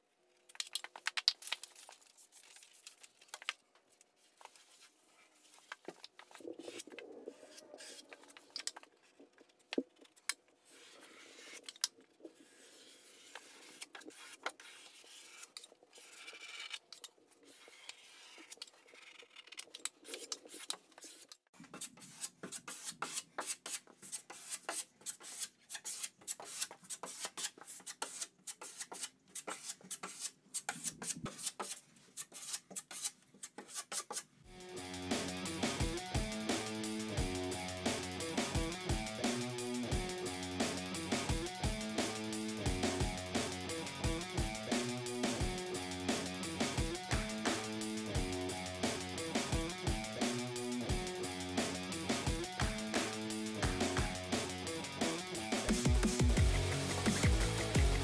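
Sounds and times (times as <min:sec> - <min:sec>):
taping knife scraping drywall: 0:10.0 - 0:34.3
music: 0:34.5 - 0:58.0.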